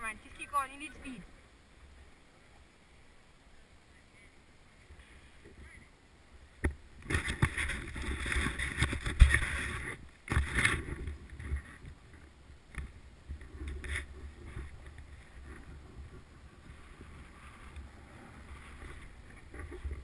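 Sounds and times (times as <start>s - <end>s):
snowboard scraping over snow: 13.6s - 20.0s.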